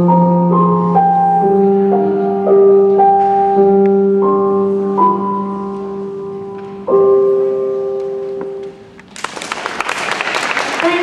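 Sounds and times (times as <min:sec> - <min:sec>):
accompaniment music held chord: 0:00.0 - 0:08.9
audience applause: 0:09.1 - 0:11.0.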